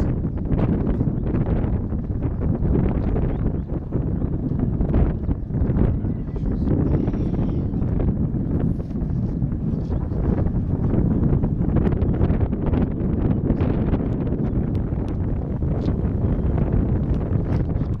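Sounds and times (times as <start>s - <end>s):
wind buffeting microphone: 0.0s - 18.0s.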